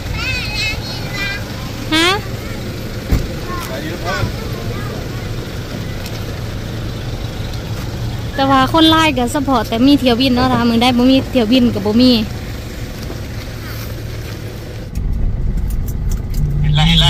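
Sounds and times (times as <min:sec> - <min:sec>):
voices calling in background: 0:00.0 - 0:14.5, 0:16.4 - 0:17.0
thump: 0:03.1 - 0:03.3
steady low hum: 0:14.7 - 0:17.0.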